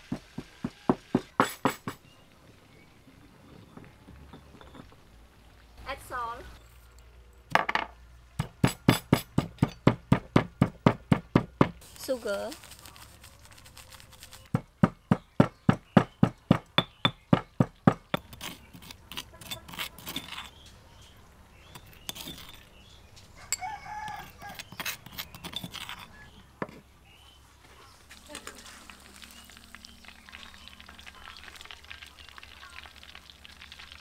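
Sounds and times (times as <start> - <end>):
stone pestle pounding in mortar: 0.1 - 2.0, 8.4 - 11.8, 14.5 - 20.4
metal spoon scraping stone mortar: 1.3 - 2.0, 12.0 - 20.7, 21.6 - 22.9, 23.5 - 26.8
rooster crowing: 23.4 - 24.7.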